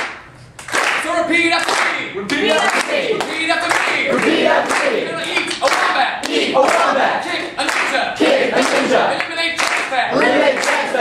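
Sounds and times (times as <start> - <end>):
hands clapping: 0.0 - 8.0, 8.6 - 11.0
voices singing unaccompanied: 2.3 - 5.5, 6.2 - 7.5, 8.2 - 9.2, 10.1 - 11.0.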